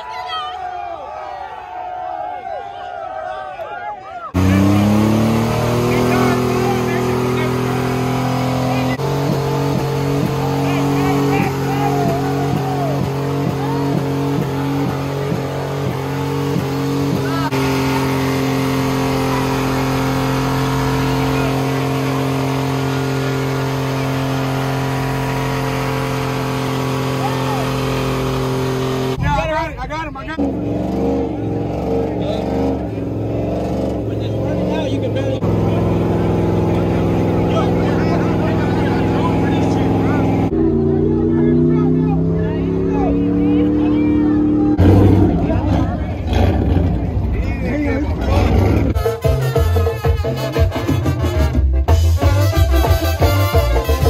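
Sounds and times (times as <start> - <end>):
crowd voices: 0.0 - 51.6
engine at high revs: 4.3 - 29.2, 30.2 - 49.0.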